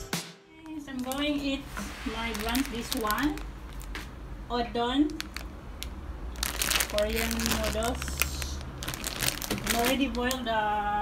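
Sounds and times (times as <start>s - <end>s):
plastic packet crinkling: 0.6s - 4.0s, 5.0s - 10.5s.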